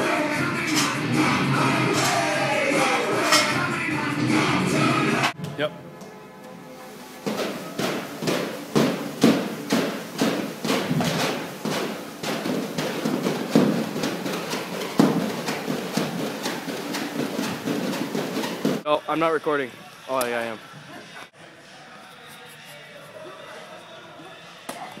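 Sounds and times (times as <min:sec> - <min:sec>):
faint music: 0:00.0 - 0:25.0
battle rope slapping floor: 0:07.2 - 0:18.8.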